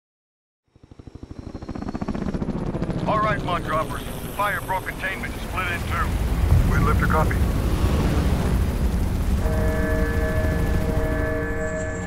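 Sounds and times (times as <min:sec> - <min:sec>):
helicopter rotor chopping: 0:00.7 - 0:12.0.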